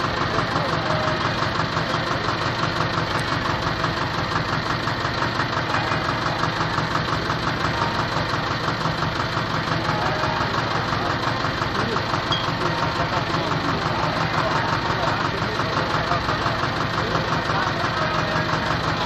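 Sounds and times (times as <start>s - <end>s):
tractor engine idling: 0.0s - 19.0s.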